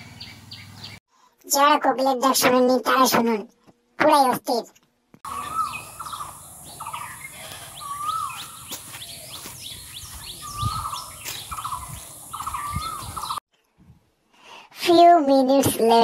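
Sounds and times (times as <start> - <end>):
small birds chirping: 0.0 - 1.1, 5.2 - 13.4.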